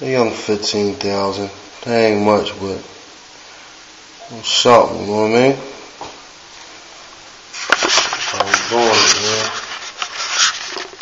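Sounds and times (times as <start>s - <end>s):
banknotes rustling: 7.6s - 11.0s.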